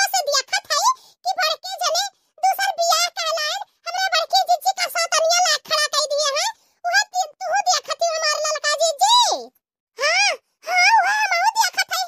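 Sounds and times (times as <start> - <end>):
high-pitched cartoon voice talking: 0.0 - 12.0.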